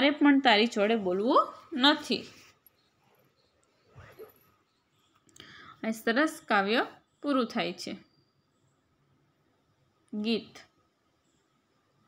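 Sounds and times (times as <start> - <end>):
person speaking: 0.0 - 2.5
person breathing: 5.4 - 5.8.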